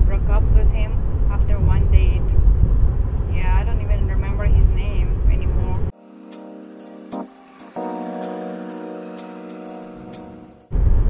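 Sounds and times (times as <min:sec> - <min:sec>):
woman speaking: 0:00.0 - 0:02.3, 0:03.3 - 0:05.9
road rumble inside car: 0:10.7 - 0:11.0.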